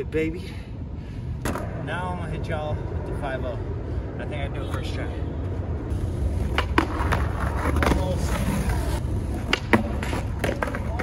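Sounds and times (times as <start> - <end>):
skateboard wheels rolling: 4.7 - 11.0
skateboard clacking on asphalt: 5.9 - 11.0.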